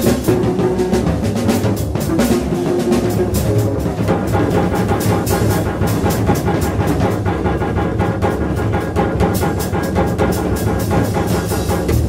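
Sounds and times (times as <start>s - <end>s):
saxophone: 0.0s - 7.1s
double bass line: 0.0s - 12.0s
rapid drum and cymbal strokes: 0.0s - 12.0s.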